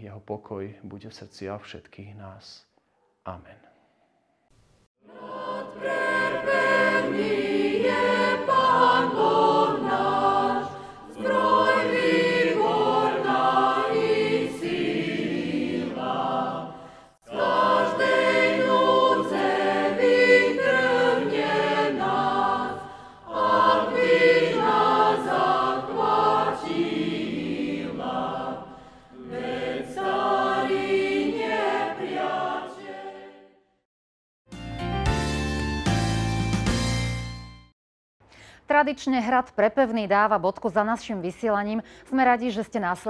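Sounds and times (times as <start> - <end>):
choir singing a hymn: 5.0 - 33.6
singers breathing: 10.7 - 11.1, 16.7 - 17.2, 22.8 - 23.3, 28.6 - 29.2, 38.3 - 38.7, 41.8 - 42.1.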